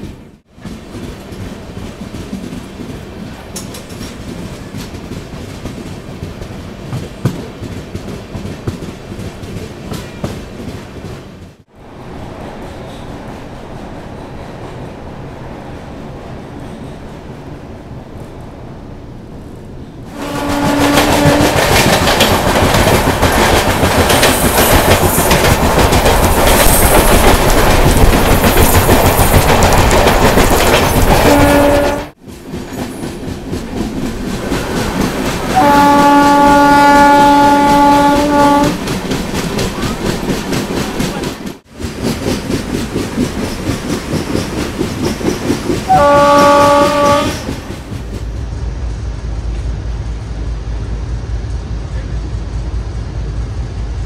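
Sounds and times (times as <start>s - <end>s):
train wheels clattering on rails: 0.0s - 11.7s, 20.1s - 50.3s
locomotive horn blasts: 20.1s - 21.6s, 31.2s - 32.2s, 35.6s - 38.8s, 45.9s - 47.4s.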